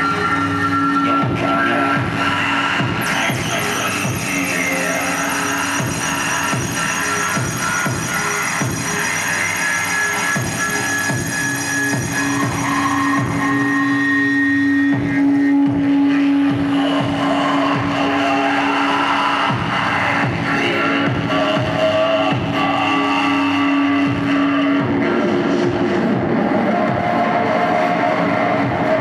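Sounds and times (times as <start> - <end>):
distorted electronic noise: 0.0 - 29.0
droning feedback tone: 0.0 - 29.0.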